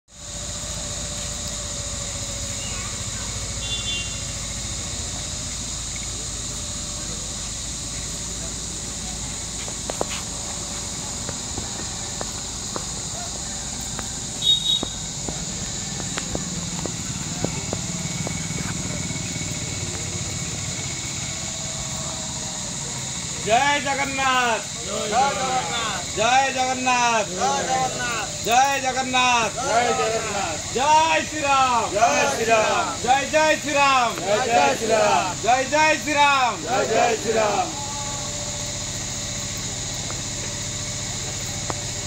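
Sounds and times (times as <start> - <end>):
high-pitched hiss: 0.1 - 42.0
insects droning: 0.1 - 42.0.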